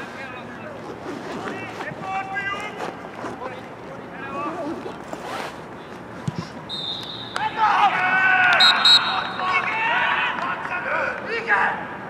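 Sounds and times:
referee's whistle long blast: 6.7 - 7.6, 8.5 - 9.5
players shouting: 6.8 - 11.8.

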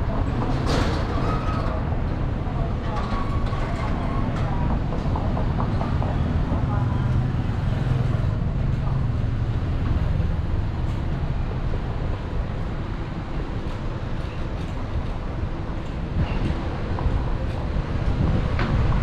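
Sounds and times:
people talking: 0.0 - 8.3
street traffic: 0.0 - 19.0.

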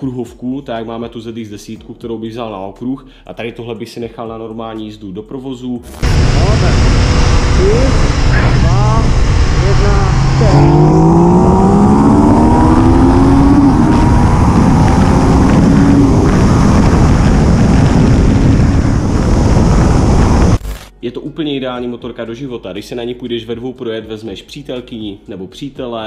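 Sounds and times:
motorcycle engine accelerating: 6.0 - 20.6
wind rush on microphone: 6.0 - 20.6.

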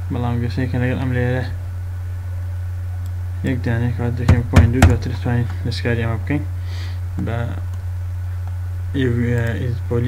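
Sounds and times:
low electrical hum: 0.0 - 10.0
man speaking: 3.5 - 5.4.

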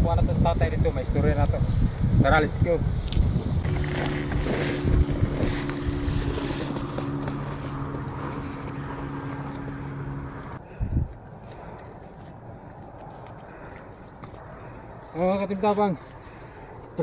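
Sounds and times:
wind on microphone: 0.0 - 11.4
engine running: 3.6 - 10.6.

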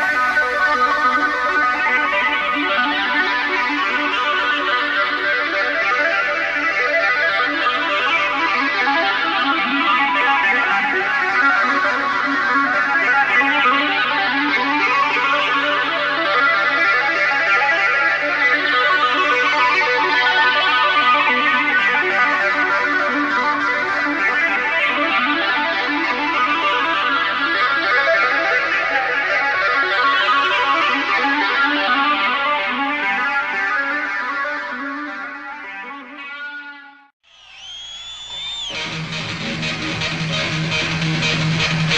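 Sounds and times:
electric guitar tapped runs: 38.7 - 41.9.

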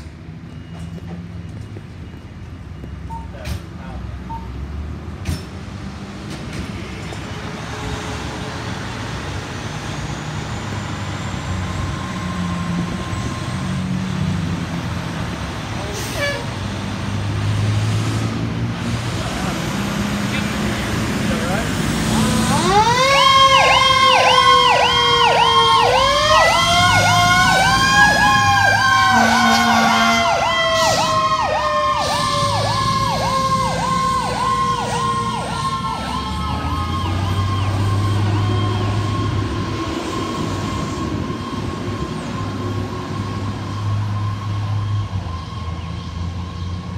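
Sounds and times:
electronic siren yelping: 22.2 - 45.8.

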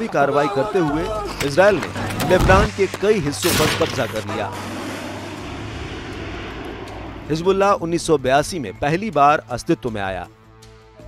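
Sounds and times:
aircraft engine rushing overhead: 2.6 - 8.7.

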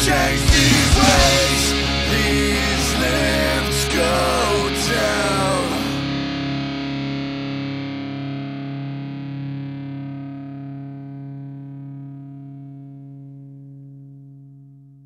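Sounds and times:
rock band playing: 0.0 - 7.7
distorted electric guitar chord: 0.0 - 13.9.

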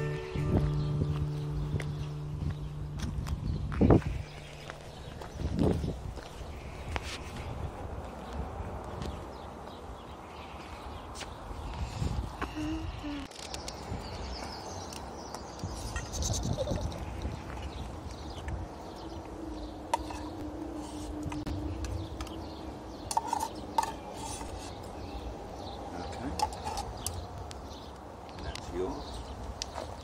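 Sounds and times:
motorway traffic rumble: 0.0 - 30.0.

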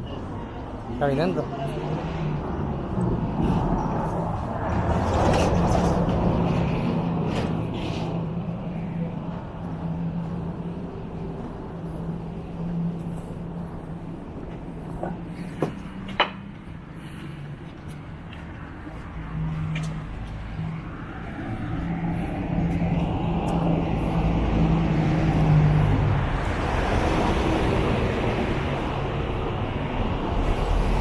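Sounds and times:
street traffic: 0.0 - 31.0
car passing by: 1.0 - 14.0, 18.2 - 31.0.

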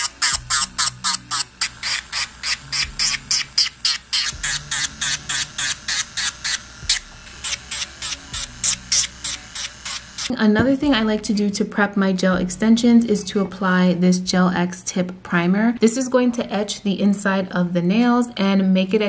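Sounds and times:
electric nail file grinding: 0.0 - 10.3.

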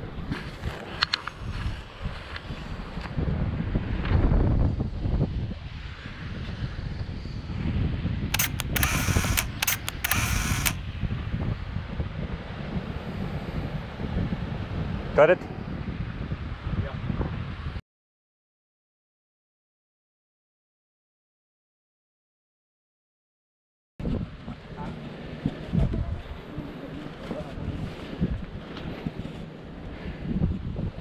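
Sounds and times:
wind on microphone: 0.0 - 17.8, 24.0 - 31.0
camera handling rumble: 0.3 - 1.7, 8.3 - 10.8
camera shutter clicks: 8.4 - 10.8.

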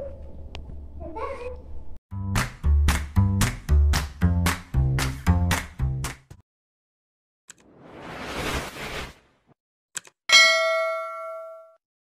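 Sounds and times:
bright bell ding: 10.3 - 11.8.

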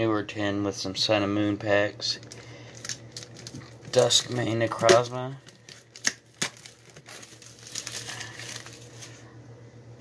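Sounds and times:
plastic shrink wrap tearing: 2.3 - 9.2.

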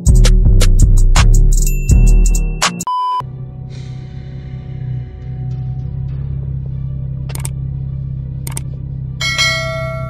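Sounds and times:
background music with low drone: 0.0 - 10.0.

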